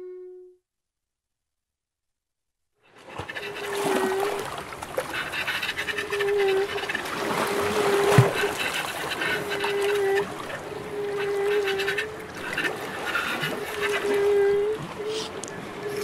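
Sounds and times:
flute: 0.0s - 0.6s
hiss with small clicks: 11.0s - 16.0s.

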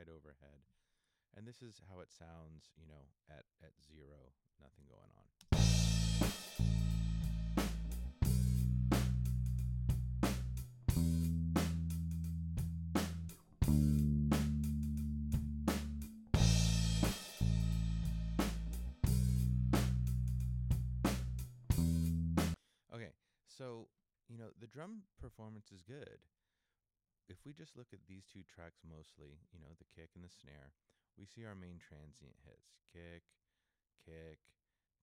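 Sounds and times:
kick and snare drum hits: 5.6s - 6.8s, 15.7s - 17.5s
cymbals: 5.6s - 9.6s, 15.7s - 20.2s, 21.1s - 22.6s
held bass notes: 5.6s - 22.6s.

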